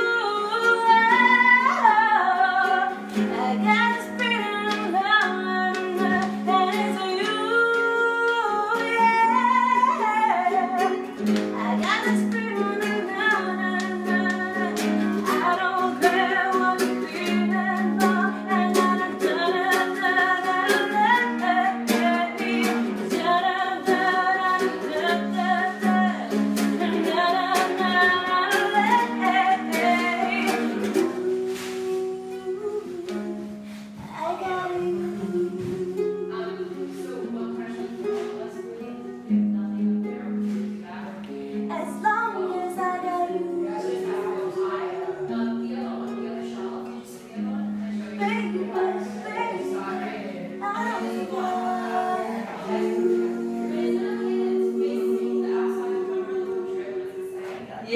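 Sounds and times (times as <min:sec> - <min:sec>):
acoustic string instrument strumming: 0:00.0 - 0:57.9
person singing: 0:00.0 - 0:57.9.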